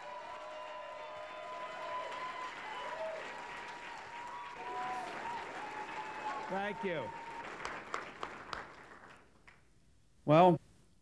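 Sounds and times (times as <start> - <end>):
audience applauding: 0.0 - 9.6.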